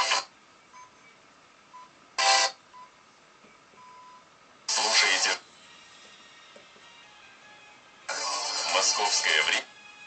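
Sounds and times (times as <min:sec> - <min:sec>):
burst of radio station sound: 0:04.7 - 0:05.5, 0:08.1 - 0:09.6.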